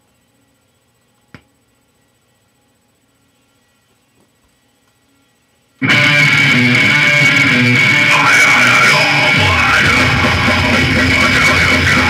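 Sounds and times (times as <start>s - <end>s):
rock song with distorted guitars: 5.8s - 12.0s.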